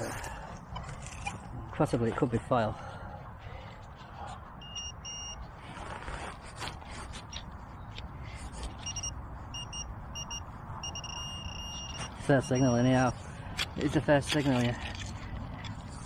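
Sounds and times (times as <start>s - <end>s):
pinpointer beeping: 4.6s - 5.4s, 8.8s - 12.9s
scraping and rustling of soil: 5.4s - 9.1s, 11.8s - 16.0s.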